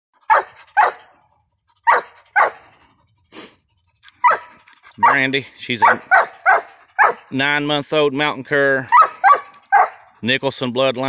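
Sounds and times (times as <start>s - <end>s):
hound barking: 0.2s - 1.2s, 1.8s - 2.8s, 4.1s - 7.3s, 8.8s - 10.2s.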